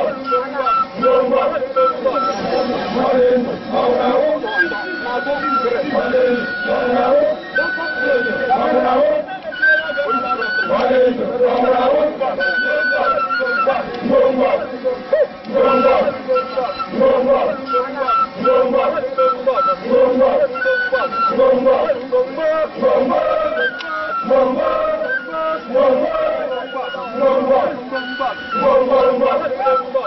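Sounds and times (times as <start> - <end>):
high piping melody: 0.0 - 13.9, 14.5 - 30.0
men chanting in unison: 0.0 - 30.0.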